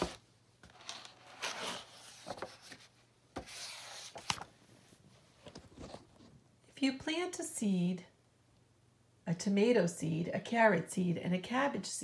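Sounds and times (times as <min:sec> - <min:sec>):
book scraping on wooden table: 0:00.0 - 0:04.4.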